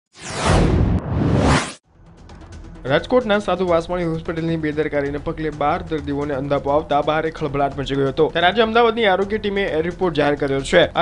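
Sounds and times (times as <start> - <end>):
whoosh sound effects: 0.1 - 1.8.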